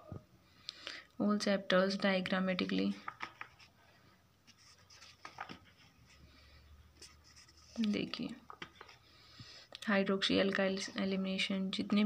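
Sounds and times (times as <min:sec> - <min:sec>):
paper pages rustling: 0:02.8 - 0:03.7, 0:04.4 - 0:06.3, 0:07.0 - 0:09.0.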